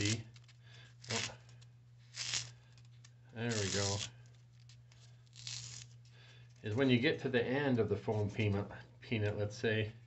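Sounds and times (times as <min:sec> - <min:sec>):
knife cutting foam: 0:00.0 - 0:00.3, 0:03.4 - 0:04.1, 0:05.2 - 0:05.9.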